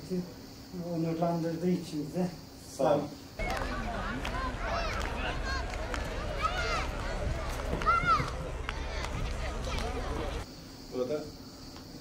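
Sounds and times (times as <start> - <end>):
high arching calls: 3.3 - 10.5
low rumble: 3.4 - 10.4
distant voices: 3.4 - 10.5.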